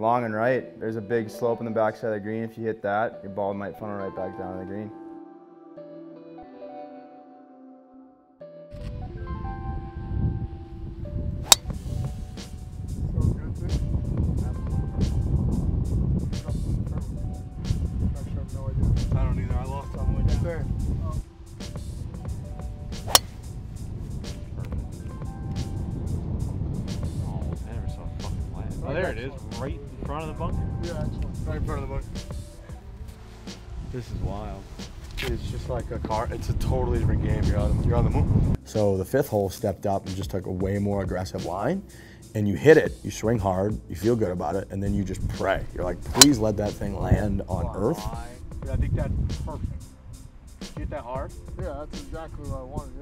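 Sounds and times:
background music: 0.0 - 53.0
wind rumble on microphone: 8.8 - 21.2, 21.9 - 32.2, 33.8 - 38.6, 46.8 - 53.0
golf driver hitting ball: 11.4 - 11.7, 23.1 - 23.4.

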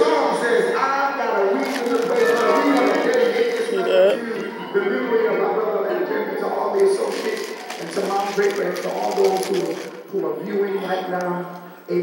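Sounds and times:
indistinct speaking voice: 1.9 - 4.5.

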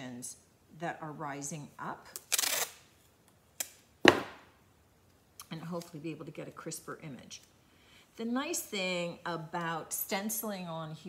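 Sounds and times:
tape ripping off roll: 2.2 - 2.9.

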